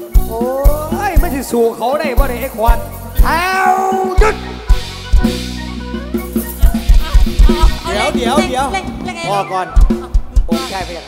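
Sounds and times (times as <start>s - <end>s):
heavy kick-drum beats: 0.0s - 11.0s
person crying out into microphone: 3.2s - 4.6s.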